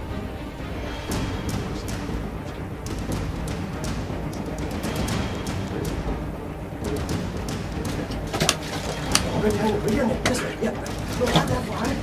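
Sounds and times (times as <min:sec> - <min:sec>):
spear splashing into water: 0:07.7 - 0:12.0.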